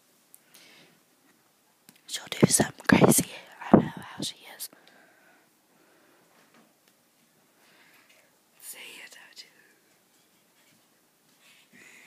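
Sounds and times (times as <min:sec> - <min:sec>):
person whispering: 0:02.1 - 0:04.8, 0:08.6 - 0:09.8.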